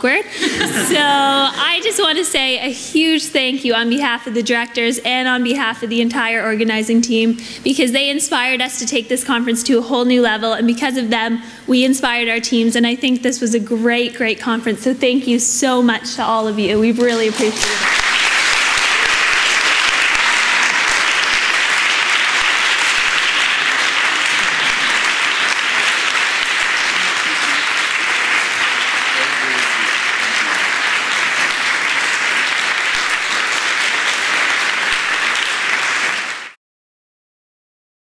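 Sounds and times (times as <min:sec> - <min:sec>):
audience applauding: 0:17.0 - 0:36.6.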